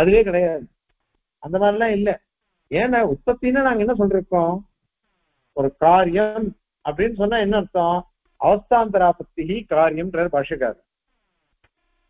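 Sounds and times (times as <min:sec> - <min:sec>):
man lecturing: 0:00.0 - 0:00.7, 0:01.4 - 0:04.6, 0:05.6 - 0:10.8.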